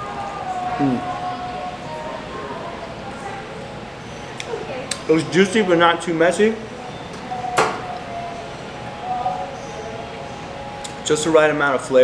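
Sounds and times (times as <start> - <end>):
faint steady tones: 6.6 - 12.0.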